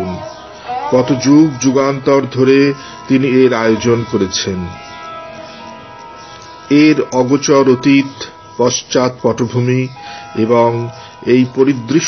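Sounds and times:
held steady note: 0:00.0 - 0:12.0
soft background music: 0:00.0 - 0:12.0
man narrating: 0:01.0 - 0:04.8, 0:06.7 - 0:12.0.

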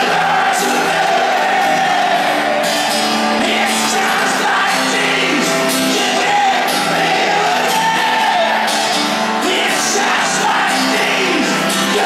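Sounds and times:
acoustic guitars: 0:00.0 - 0:12.0
crowd singing along: 0:00.0 - 0:12.0.

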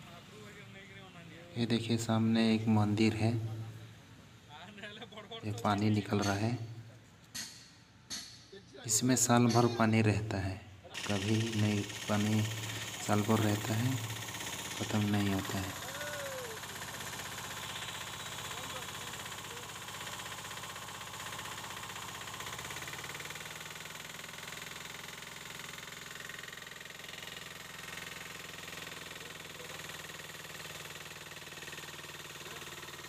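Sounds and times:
small pump engine running: 0:10.9 - 0:33.0.

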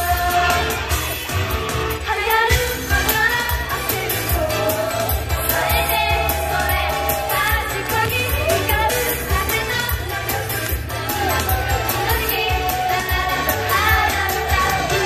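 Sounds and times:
backing track with beat and bass: 0:00.0 - 0:15.0
women singing pop song: 0:01.9 - 0:15.0.

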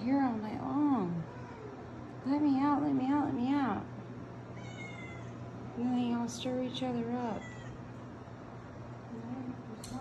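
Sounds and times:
cat meowing: 0:04.6 - 0:05.5, 0:07.3 - 0:07.9.

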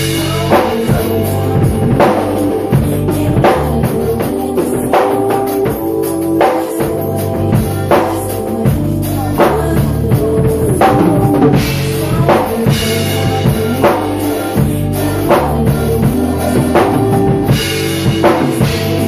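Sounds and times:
acoustic drum kit groove: 0:00.0 - 0:19.0
recorded song with bass: 0:00.0 - 0:19.0.

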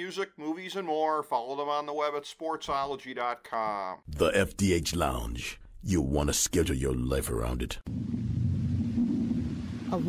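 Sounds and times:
man's voice: 0:00.0 - 0:07.9
low rumble: 0:07.2 - 0:10.0.

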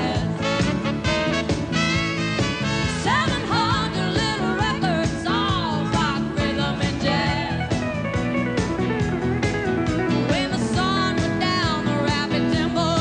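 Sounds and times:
acoustic guitar: 0:00.0 - 0:13.0
drums: 0:00.0 - 0:13.0
pedal steel guitar: 0:00.0 - 0:13.0.

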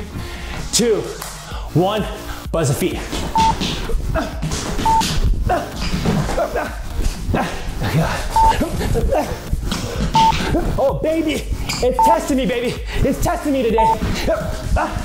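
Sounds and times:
rapid footsteps on hard floor: 0:02.9 - 0:07.3.

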